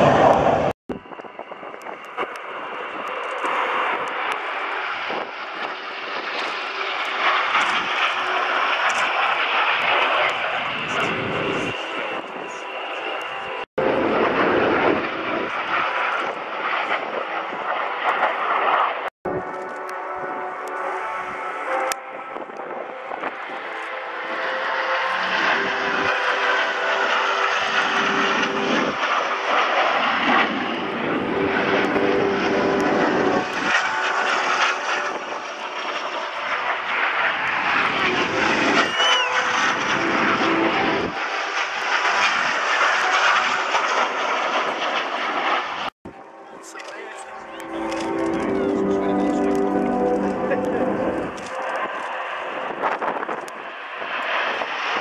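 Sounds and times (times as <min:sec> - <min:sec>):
jet aircraft passing overhead: 0:00.0 - 0:55.0.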